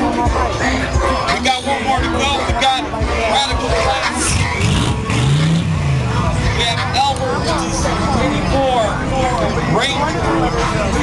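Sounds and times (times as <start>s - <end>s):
crowd chatter: 0.0s - 11.0s
car engine revving: 3.7s - 11.0s.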